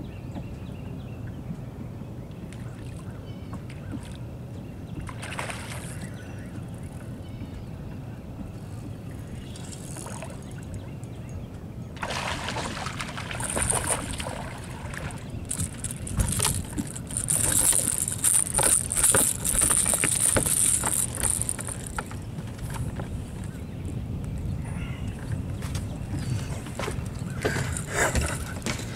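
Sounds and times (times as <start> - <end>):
low rumble of water and wind: 0.0 - 28.9
fishing reel clicking whir: 9.5 - 10.6, 15.5 - 22.2.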